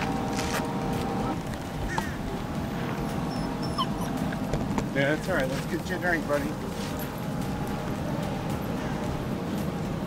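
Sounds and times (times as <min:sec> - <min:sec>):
low outdoor rumble: 0:00.0 - 0:10.0
dog whining: 0:03.2 - 0:04.5.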